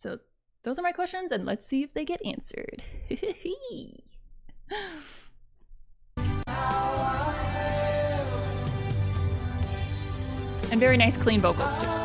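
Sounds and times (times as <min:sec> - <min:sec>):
woman's breathy sigh: 0:04.7 - 0:05.4.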